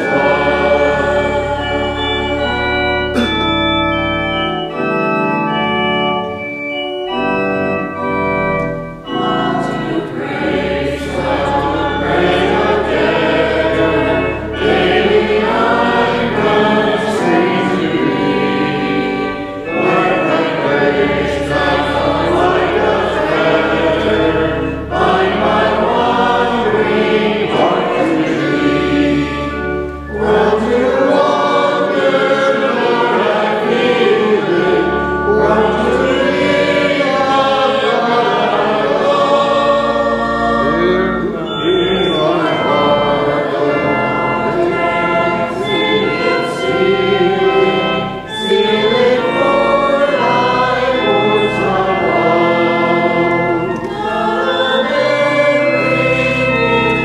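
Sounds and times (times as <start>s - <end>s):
organ chords: 0.0s - 57.0s
voices singing a hymn: 0.0s - 57.0s.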